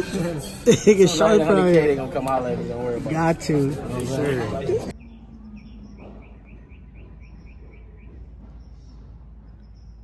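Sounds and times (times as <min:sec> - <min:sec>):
bird chirping: 0:04.9 - 0:10.0.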